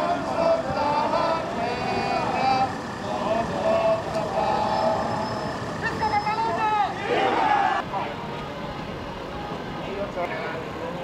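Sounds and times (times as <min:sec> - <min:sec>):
crowd chanting and shouting: 0:00.0 - 0:10.8
street noise: 0:00.0 - 0:11.0.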